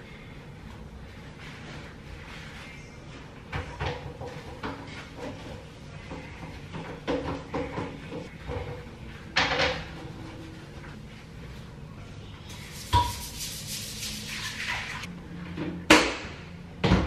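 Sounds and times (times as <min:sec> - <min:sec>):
hissy scrubbing or spraying: 0:12.5 - 0:15.1.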